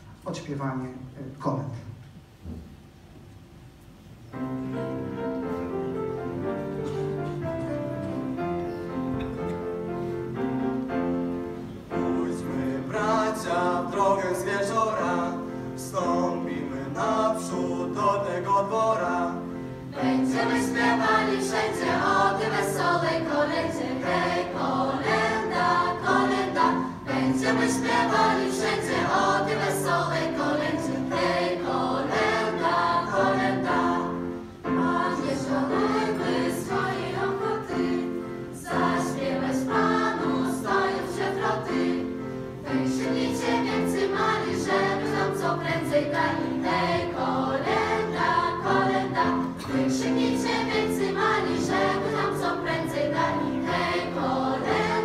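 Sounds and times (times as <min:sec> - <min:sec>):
children's choir singing a carol: 0:10.3 - 0:55.0.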